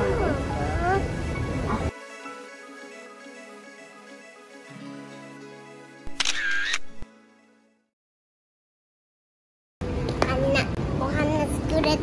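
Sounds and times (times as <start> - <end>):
background music: 0.0 - 7.9
camera shutter snap: 6.1 - 7.0.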